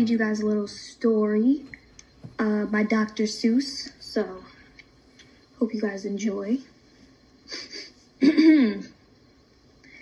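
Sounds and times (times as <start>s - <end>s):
person clearing throat: 8.2s - 8.9s.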